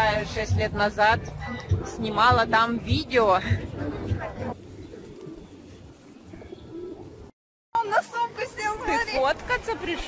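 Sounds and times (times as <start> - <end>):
pigeons cooing: 1.2 - 7.3.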